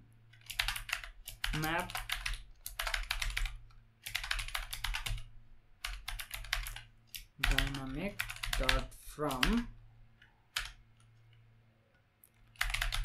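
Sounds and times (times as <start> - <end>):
typing on computer keyboard: 0.3 - 11.1, 12.4 - 13.0
person speaking: 1.4 - 2.4, 7.3 - 9.9.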